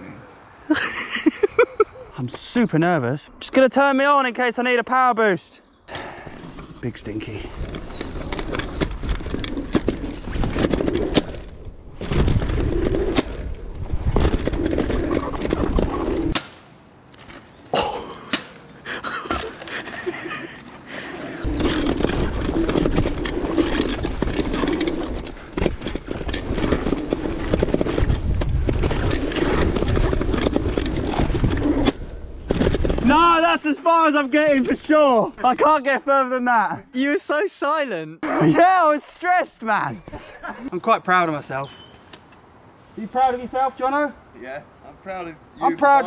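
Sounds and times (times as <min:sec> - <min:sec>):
tyres rolling on packed dirt: 0:06.2 - 0:16.3, 0:19.2 - 0:35.5
bike rattling and knocking: 0:06.8 - 0:16.4, 0:21.4 - 0:33.2.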